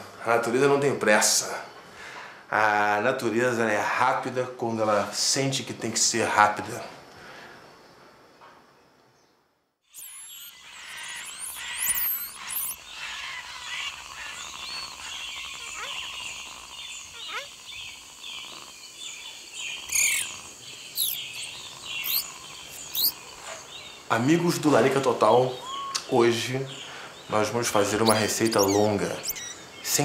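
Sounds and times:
birds chirping and whistling: 0:09.9 - 0:18.4, 0:19.0 - 0:24.0, 0:25.5 - 0:30.0.

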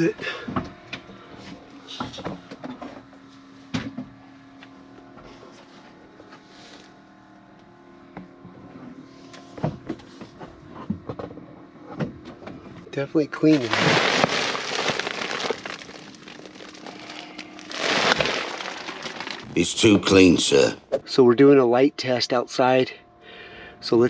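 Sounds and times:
low steady hum: 0:13.6 - 0:24.0.

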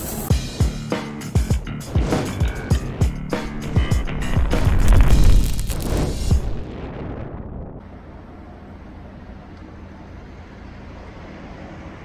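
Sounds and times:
low outdoor rumble: 0:02.9 - 0:12.0.

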